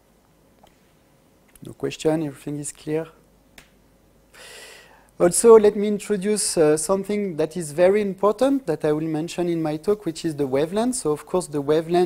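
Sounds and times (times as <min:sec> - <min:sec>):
man speaking: 0:01.6 - 0:03.2, 0:05.2 - 0:12.0.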